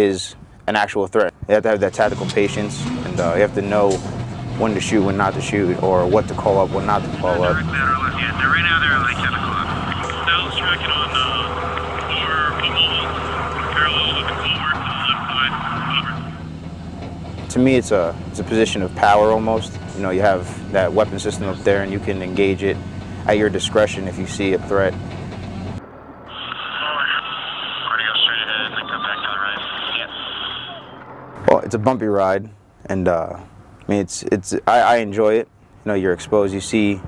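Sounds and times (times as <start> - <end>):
vehicle engine running: 1.8 - 32.0
indistinct radio voices: 6.3 - 16.4, 26.3 - 31.0.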